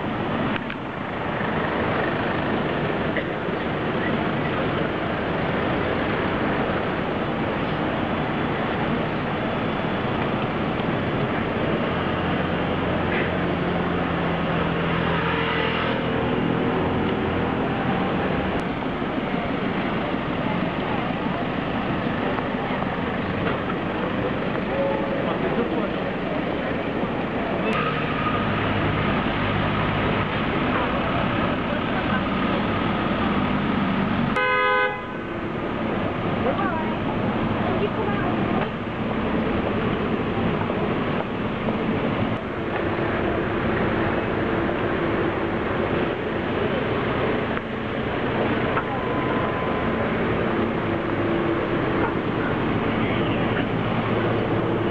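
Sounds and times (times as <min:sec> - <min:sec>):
city street traffic: 0:00.0 - 0:54.9
vehicle engines passing: 0:00.0 - 0:54.9
short car horn toot: 0:34.4 - 0:35.2.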